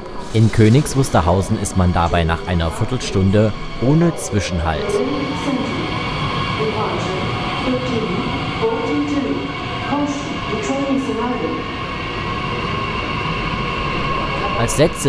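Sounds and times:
electric train whine: 0.0 - 15.0
train running noise: 0.0 - 15.0.

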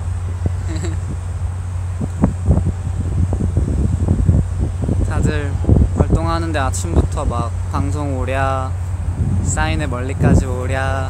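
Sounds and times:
wind on microphone: 0.0 - 11.0
man speaking: 9.4 - 11.0.

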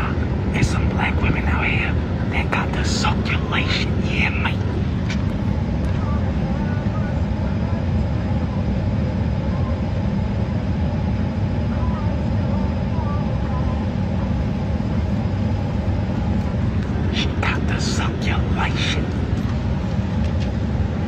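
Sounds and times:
jet engine cabin rumble: 0.0 - 21.0.

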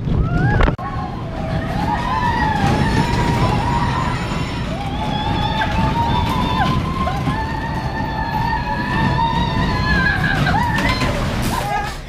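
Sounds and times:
roller coaster train rumbling: 0.0 - 12.0.

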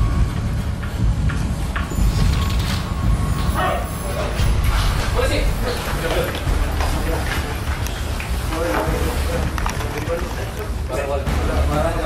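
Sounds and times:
people moving in a room: 0.0 - 12.0
steady low rumble: 0.0 - 12.0.

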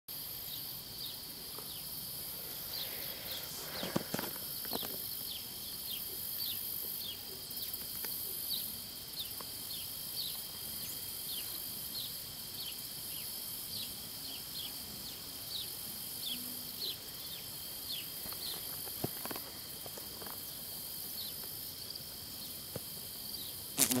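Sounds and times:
shrill insect chorus: 0.1 - 24.0.

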